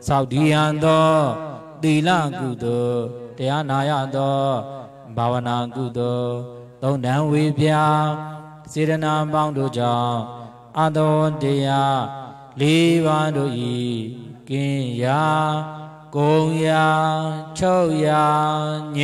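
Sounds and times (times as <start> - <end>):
man chanting into microphone: 0.0 - 19.0.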